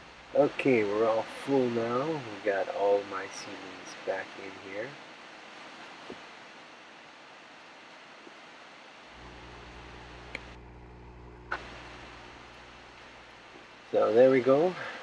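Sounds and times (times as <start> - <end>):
low steady hum: 9.0 - 15.0
faint clicks: 9.2 - 13.7.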